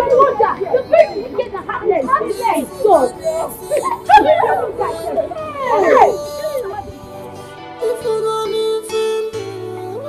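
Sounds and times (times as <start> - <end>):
people talking and exclaiming: 0.0 - 10.0.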